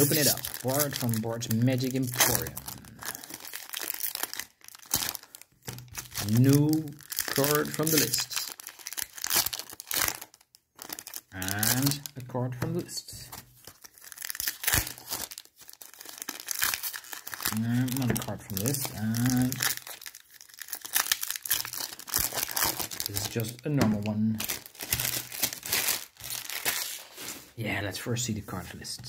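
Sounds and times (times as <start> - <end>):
foil wrapper tearing and crinkling: 0.0 - 12.8, 13.4 - 27.6.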